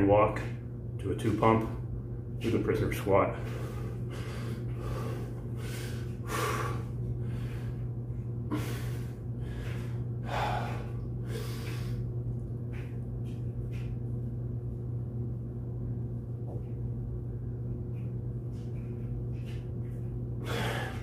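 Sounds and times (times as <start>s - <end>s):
man breathing hard: 3.4s - 12.1s, 20.4s - 21.0s.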